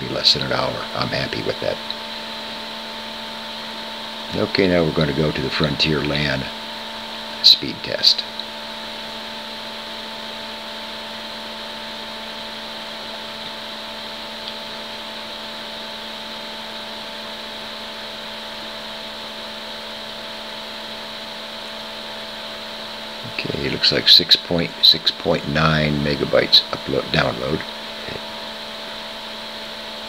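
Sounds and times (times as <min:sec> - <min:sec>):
background hum and hiss: 0:00.0 - 0:30.0.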